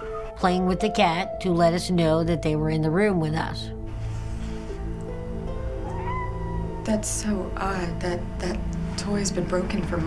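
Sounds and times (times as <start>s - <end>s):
background music score: 3.7s - 10.0s
cat meowing: 5.8s - 7.2s.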